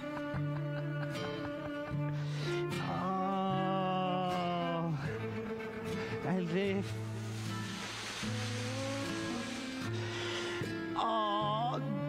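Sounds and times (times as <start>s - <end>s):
hissing wash: 6.8s - 11.0s.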